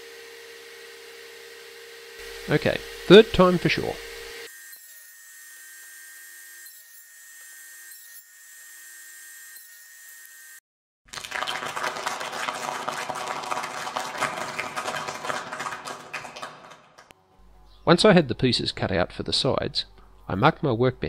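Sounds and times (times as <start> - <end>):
saw cutting wood rasping: 0.0 - 10.6
table saw whine: 0.0 - 10.6.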